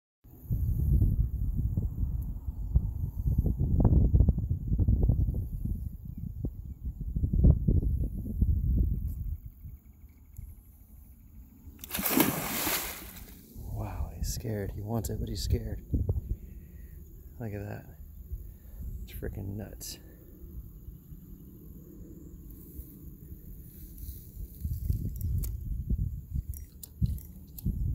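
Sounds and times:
loud water splash: 0:11.8 - 0:13.4.

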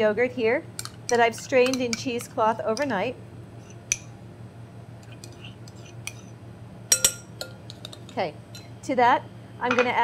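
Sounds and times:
spoon clinking on glass bowl: 0:06.9 - 0:07.6.

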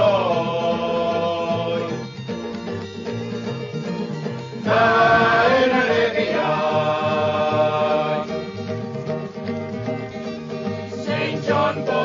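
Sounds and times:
repeating bass line: 0:04.6 - 0:08.6.

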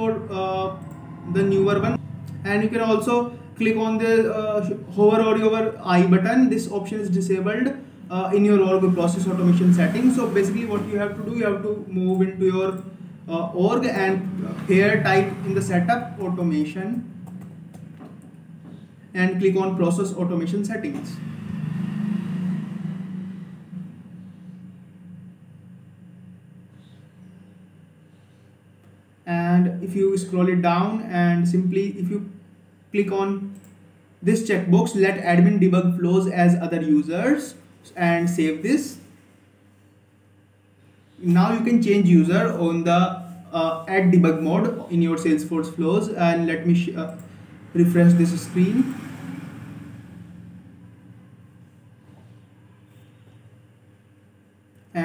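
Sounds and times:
faint low hum: 0:23.0 - 0:48.9.

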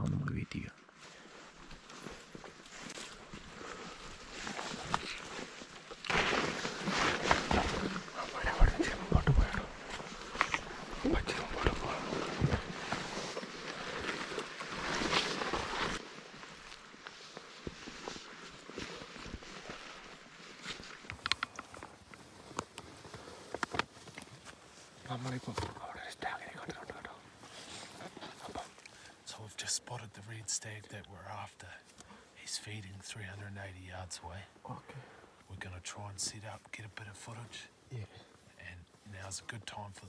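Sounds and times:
footsteps crunching on frosty ground: 0:01.0 - 0:29.3
scrub brushing against clothing: 0:09.7 - 0:21.2.

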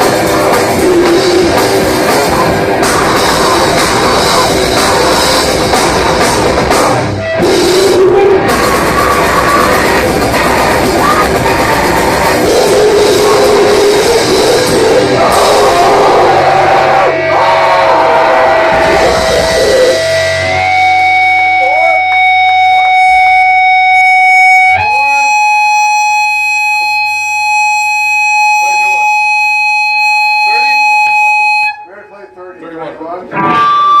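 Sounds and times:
grindcore band playing: 0:00.0 - 0:31.8, 0:33.3 - 0:34.0
guitar feedback tone: 0:00.0 - 0:34.0.

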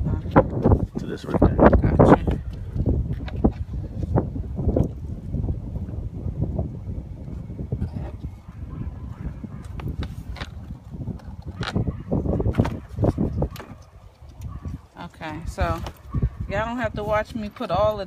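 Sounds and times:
plastic cover knocks and scrapes: 0:12.4 - 0:13.8.

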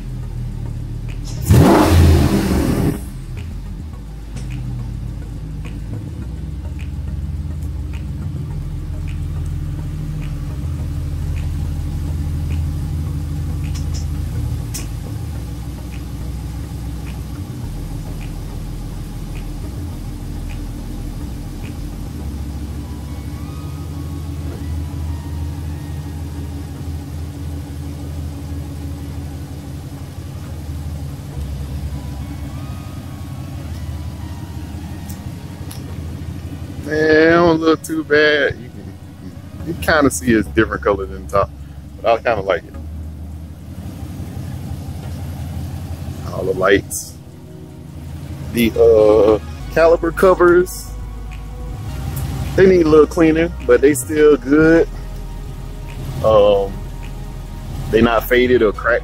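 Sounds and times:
light regular ticking: 0:00.0 - 0:48.8, 0:49.4 - 0:59.0
truck engine idling: 0:00.0 - 0:59.0.

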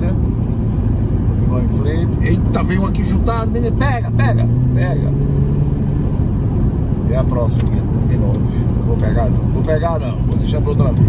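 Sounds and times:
car engine and tyres rumbling: 0:00.0 - 0:11.0
constant low hum: 0:00.0 - 0:11.0.

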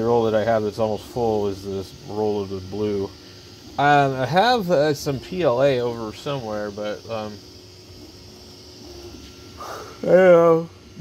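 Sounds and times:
printer fans whirring: 0:00.0 - 0:11.0
stepper motors humming: 0:00.0 - 0:11.0.

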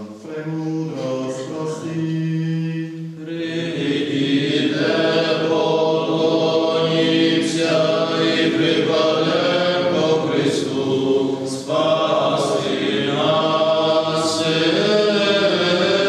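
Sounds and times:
men singing a liturgical chant: 0:00.0 - 0:16.0.

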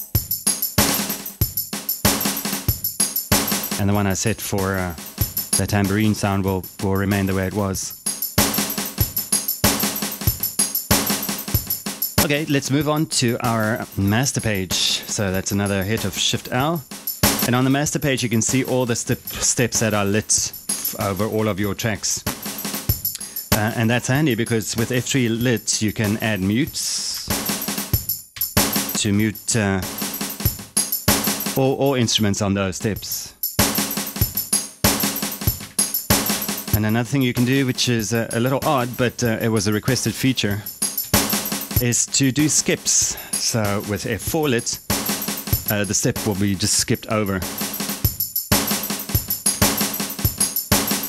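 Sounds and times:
drum machine pattern: 0:00.0 - 0:51.0.

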